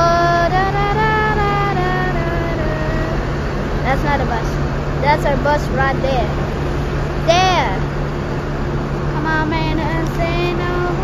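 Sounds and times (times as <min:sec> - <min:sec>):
bus engines humming: 0:00.0 - 0:11.0.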